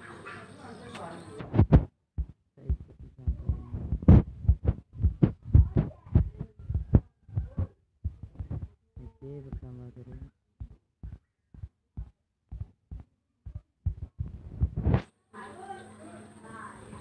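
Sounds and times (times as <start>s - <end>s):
fingertip taps on touchscreen: 1.6s - 15.0s.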